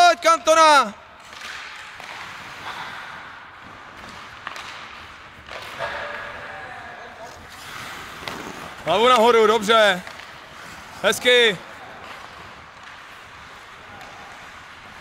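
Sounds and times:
hockey sticks and puck clacking: 0.3s - 15.0s
skates scraping ice: 1.2s - 15.0s.

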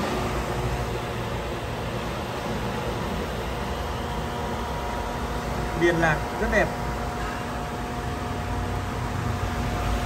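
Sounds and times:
steady background hum and hiss: 0.0s - 10.0s.

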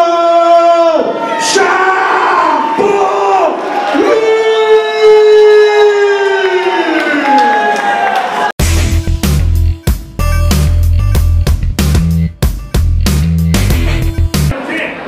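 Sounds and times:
crowd cheering: 0.6s - 8.6s, 14.5s - 15.0s.

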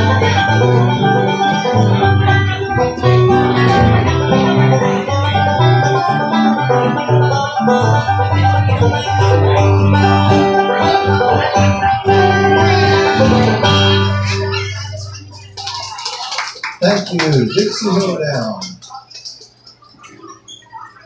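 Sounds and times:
banjo picking fast melody: 0.0s - 15.5s
acoustic guitar rhythm: 0.0s - 20.5s.

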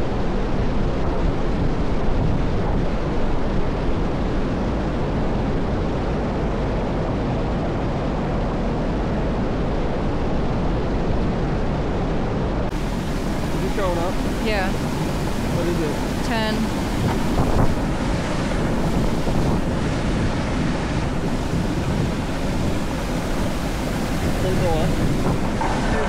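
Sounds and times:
water rushing over a dam: 12.7s - 26.0s.

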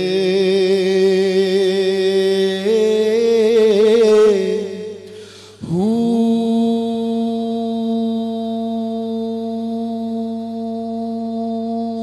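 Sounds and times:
man singing a long note: 0.0s - 12.0s.

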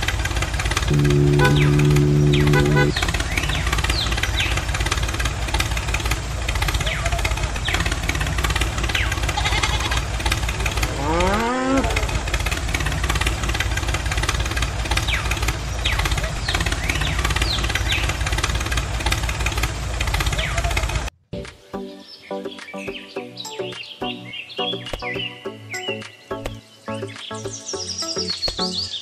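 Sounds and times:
tractor engine knocking: 0.0s - 21.1s
rising whine: 0.9s - 3.9s.

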